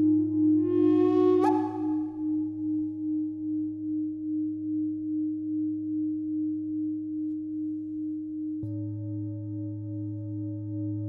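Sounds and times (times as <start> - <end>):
singing bowls humming: 0.0 - 11.0.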